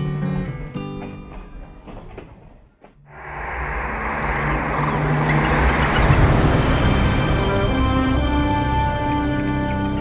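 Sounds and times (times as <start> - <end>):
train rumbling through tunnel: 0.1 - 10.0.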